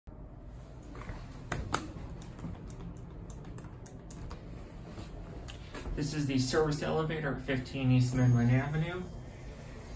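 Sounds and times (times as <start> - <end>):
low steady hum: 0.1 - 9.9.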